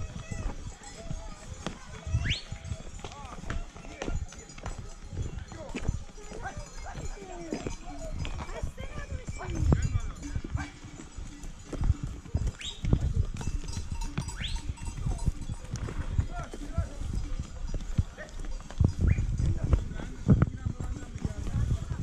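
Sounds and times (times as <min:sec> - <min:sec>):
hooves knocking on stones: 0:00.0 - 0:22.0.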